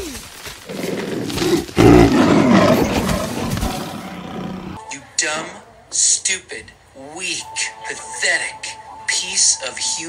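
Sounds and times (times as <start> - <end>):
panther snarling roar: 0.7 - 4.8.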